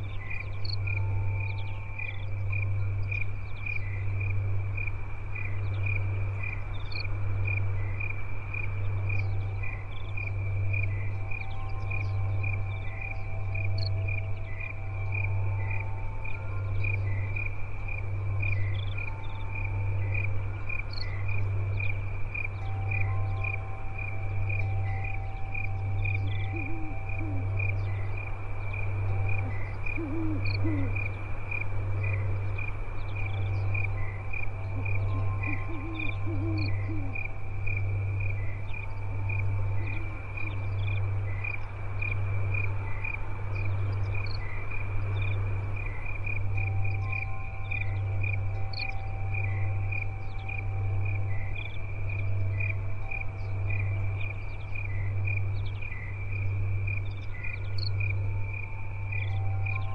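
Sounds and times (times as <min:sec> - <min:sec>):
crickets chirping: 0:00.0 - 0:59.9
low wavering calls: 0:00.0 - 0:59.9.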